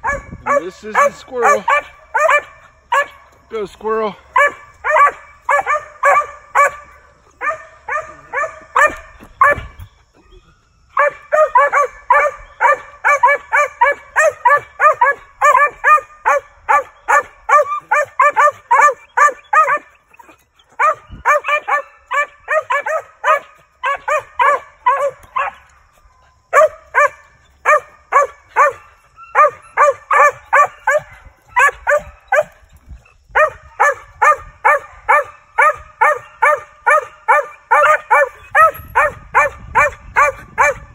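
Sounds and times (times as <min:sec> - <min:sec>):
dog barking rapidly: 0:00.0 - 0:03.2, 0:04.3 - 0:09.8, 0:11.0 - 0:19.9, 0:20.8 - 0:25.6, 0:26.5 - 0:32.5, 0:33.3 - 0:40.9.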